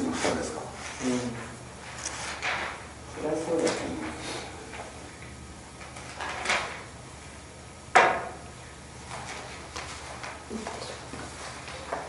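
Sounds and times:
rustles and scrapes at table: 0.0s - 2.8s.

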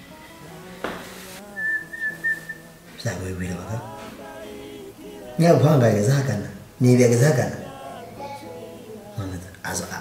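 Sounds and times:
soft background music: 0.0s - 10.0s
high whistled note: 1.4s - 2.6s.

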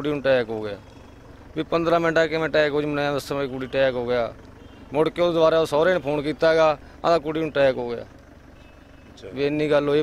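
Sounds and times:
man speaking: 9.2s - 10.0s.

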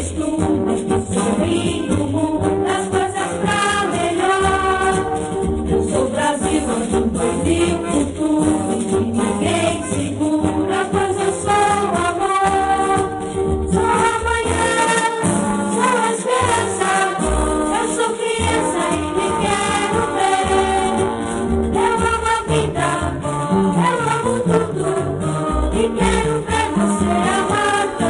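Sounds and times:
choir singing with accompaniment: 0.0s - 28.0s
light percussion: 0.0s - 28.0s.

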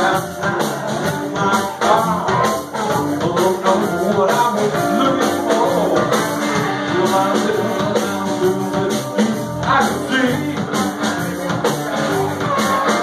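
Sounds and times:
bass guitar: 0.0s - 13.0s
drum kit: 0.0s - 13.0s
electric guitars: 0.0s - 13.0s
harmonica: 0.0s - 13.0s.

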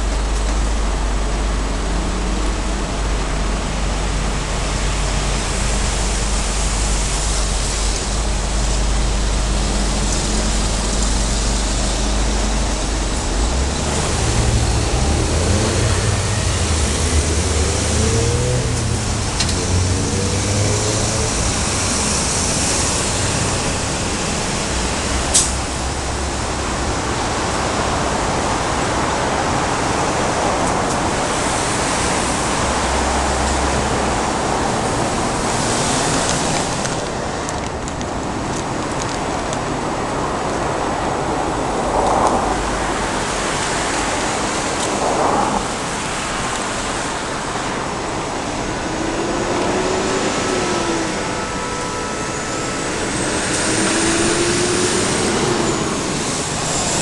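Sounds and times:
vehicle engine revving: 0.0s - 37.4s, 40.1s - 57.0s
road traffic noise: 0.0s - 57.0s.

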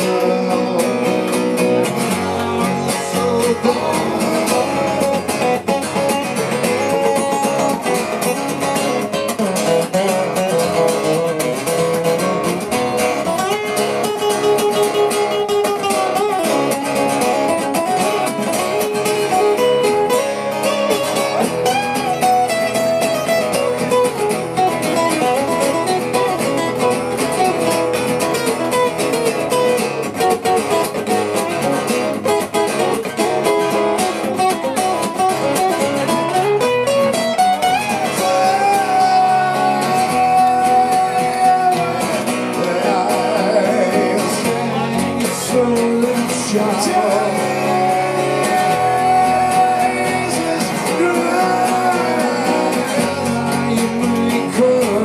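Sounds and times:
acoustic guitars strumming chords: 0.0s - 55.0s.

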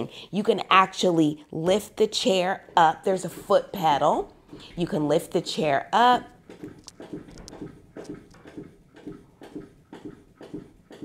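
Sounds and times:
hydraulic foot pump knocking: 6.1s - 11.0s.

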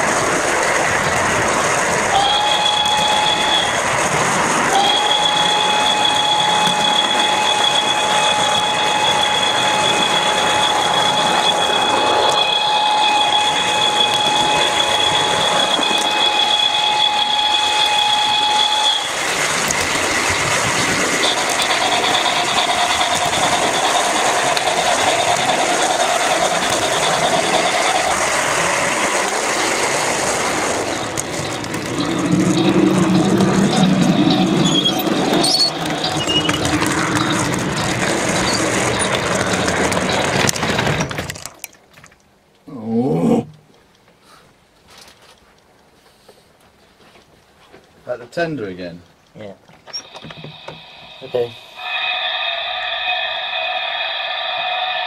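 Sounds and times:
model train rolling on track: 0.0s - 42.4s, 47.8s - 55.0s
high steady tone: 2.1s - 3.9s, 4.7s - 40.0s, 49.9s - 55.0s.

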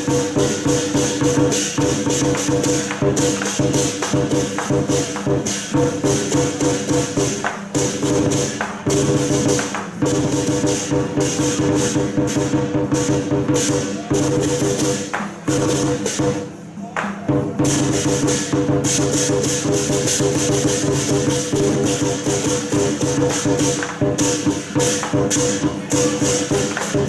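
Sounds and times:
cymbals clashing: 0.0s - 27.0s
rapid drum strikes: 0.0s - 27.0s.

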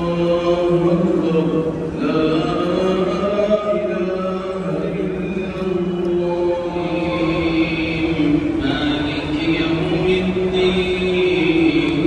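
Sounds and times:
person chanting long notes: 0.0s - 12.0s.

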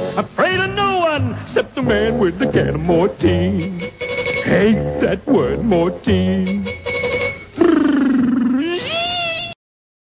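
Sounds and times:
cat-like wail: 7.6s - 9.6s.

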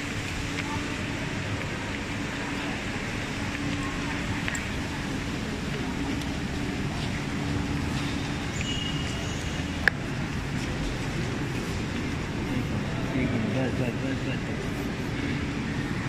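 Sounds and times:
crowd murmur: 0.0s - 16.0s
traffic hum: 0.0s - 16.0s.

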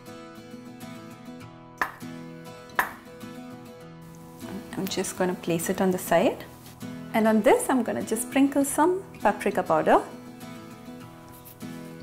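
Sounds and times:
soft acoustic guitar music: 0.0s - 12.0s
knife striking cutting board: 1.8s - 2.1s, 2.8s - 3.0s.

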